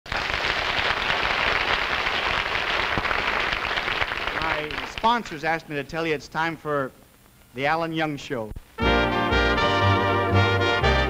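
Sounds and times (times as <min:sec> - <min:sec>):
audience applauding: 0:00.1 - 0:05.5.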